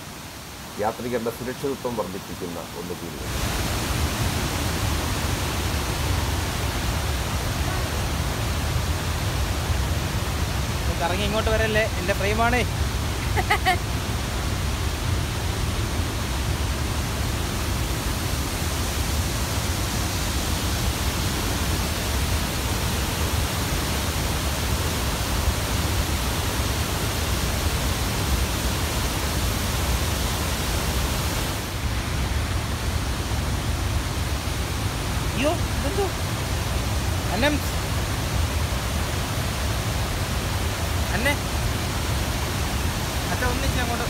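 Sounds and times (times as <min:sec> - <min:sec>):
waterfall rushing: 0:00.0 - 0:44.0.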